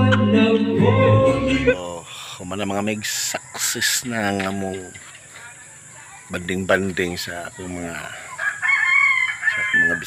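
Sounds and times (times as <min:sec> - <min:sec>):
rooster crowing: 0:03.8 - 0:04.9, 0:08.1 - 0:10.0.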